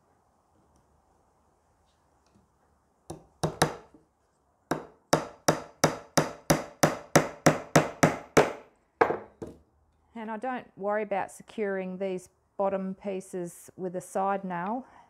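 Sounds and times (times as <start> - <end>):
hammer striking nail into wood: 3.1 - 3.9, 4.7 - 9.6.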